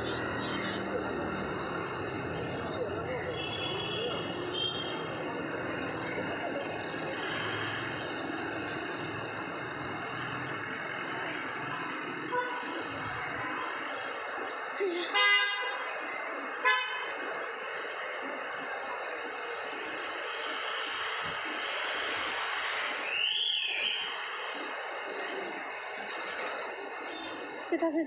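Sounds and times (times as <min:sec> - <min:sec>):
indistinct voices: 0:00.0 - 0:15.2
traffic: 0:00.0 - 0:28.0.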